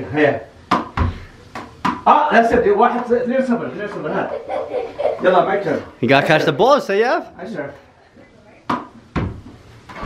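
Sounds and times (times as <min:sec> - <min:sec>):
ball knocking against wall: 0:00.7 - 0:02.7, 0:08.7 - 0:10.0.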